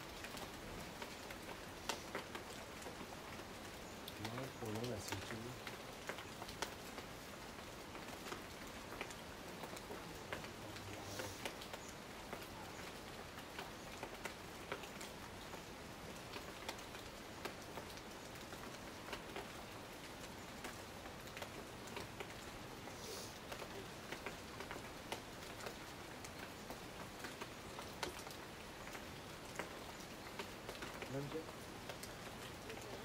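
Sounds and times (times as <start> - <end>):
rain hissing: 0.0 - 33.0
raindrops ticking: 0.0 - 33.0.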